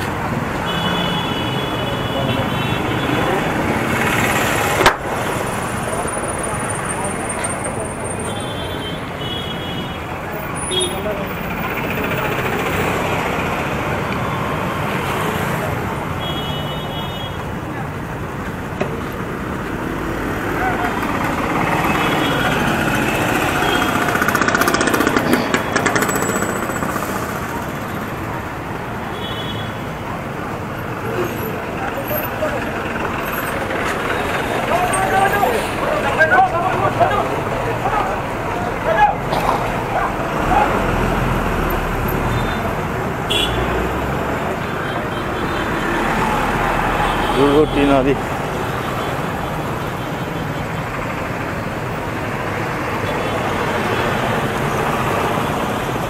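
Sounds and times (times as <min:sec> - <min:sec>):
people talking: 0:00.0 - 0:09.2, 0:10.1 - 0:14.6, 0:30.1 - 0:49.1
traffic engines and tyres: 0:00.0 - 0:56.0.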